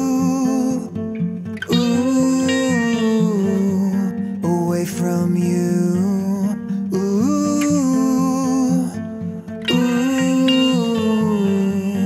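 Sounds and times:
acoustic guitar: 0:00.0 - 0:12.0
wordless sung note: 0:09.7 - 0:12.0.

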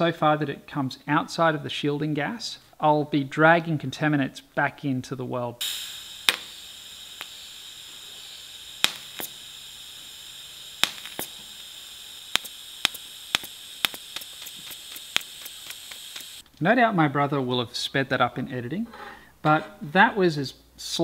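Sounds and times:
welding arc hissing: 0:05.6 - 0:16.4
sharp clicks: 0:08.8 - 0:09.4, 0:10.8 - 0:16.4.

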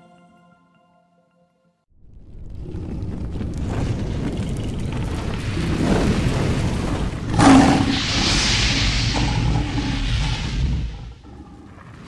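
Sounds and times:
low rumble: 0:02.0 - 0:12.0
rushing whoosh: 0:05.4 - 0:11.3.

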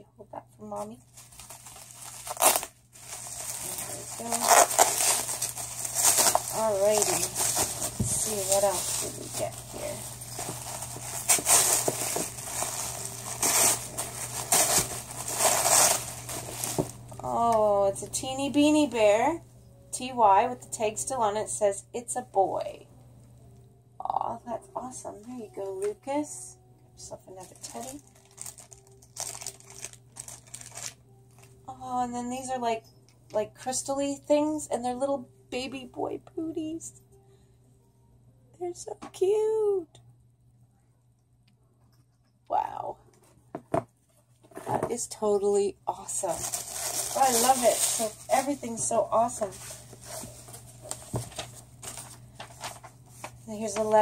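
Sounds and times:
bubble wrap crinkling: 0:00.7 - 0:19.0, 0:27.3 - 0:31.8, 0:45.9 - 0:54.0
bubble wrap crunch: 0:00.8 - 0:17.6, 0:27.4 - 0:31.8, 0:45.9 - 0:54.0.

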